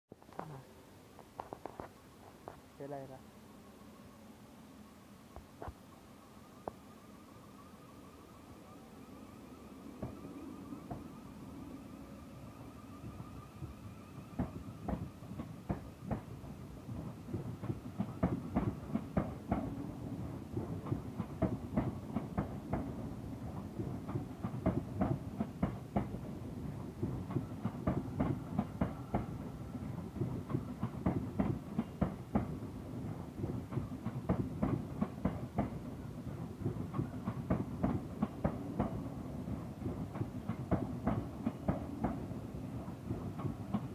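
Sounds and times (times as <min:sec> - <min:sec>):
faint wavering whine: 0:02.0 - 0:15.4
train wheels clattering over rail joints: 0:14.4 - 0:19.9, 0:20.5 - 0:35.9, 0:36.6 - 0:42.3.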